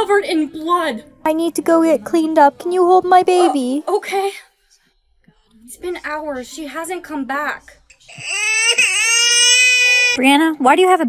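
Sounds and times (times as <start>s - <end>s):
baby crying: 7.9s - 10.2s.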